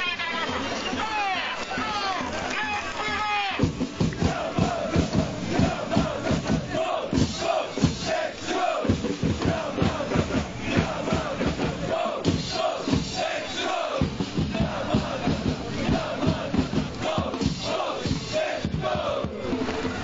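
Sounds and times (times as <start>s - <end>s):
crowd chanting in unison: 0.2s - 20.0s
steady beat: 1.7s - 20.0s.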